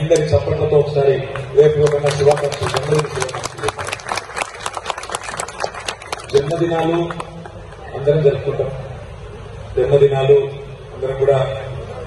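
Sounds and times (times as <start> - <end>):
audience clapping: 1.3 - 7.8.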